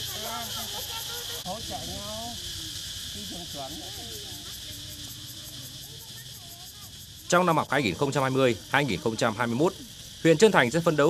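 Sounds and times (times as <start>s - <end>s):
high hiss: 0.0s - 11.0s
people talking in background: 0.0s - 11.0s.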